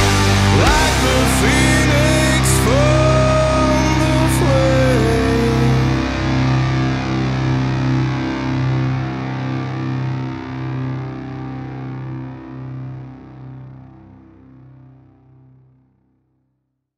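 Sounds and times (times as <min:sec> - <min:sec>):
distorted electric guitar chord ringing: 0:00.0 - 0:15.6.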